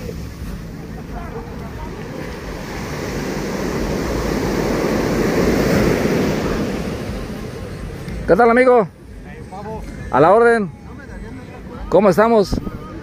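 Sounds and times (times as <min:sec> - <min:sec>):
wind buffeting microphone: 0:00.0 - 0:08.3
surf washing onto beach: 0:00.0 - 0:08.9.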